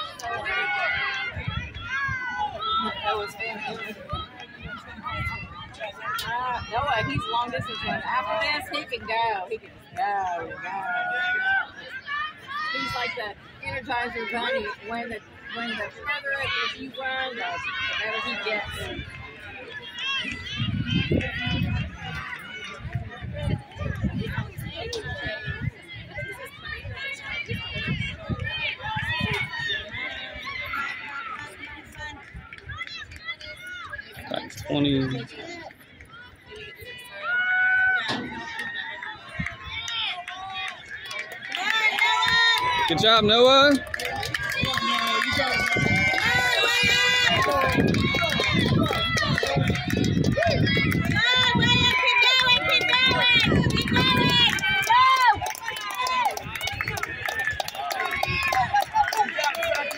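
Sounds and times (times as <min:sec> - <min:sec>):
people talking over one another: 0:00.0 - 0:59.9
spectators chatting: 0:00.0 - 0:59.9.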